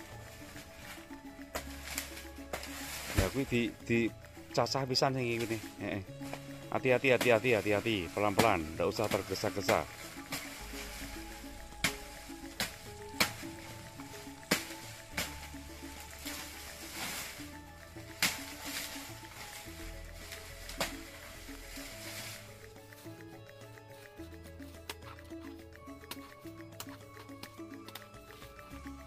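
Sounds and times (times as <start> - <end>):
slow background music: 0.0 - 29.0
machete chopping plant stems: 1.5 - 3.8, 5.2 - 19.7, 20.3 - 22.4.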